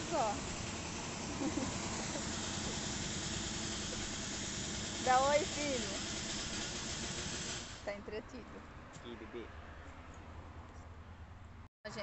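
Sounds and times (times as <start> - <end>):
even hiss: 0.0 - 8.0
vehicle engine idling: 0.0 - 8.6.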